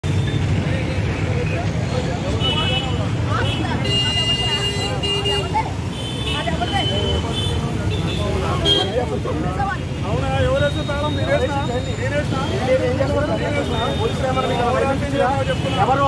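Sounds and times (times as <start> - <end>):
crowd of overlapping voices: 0.0 - 16.0
street traffic rumble: 0.0 - 16.0
vehicle horns: 2.2 - 9.1.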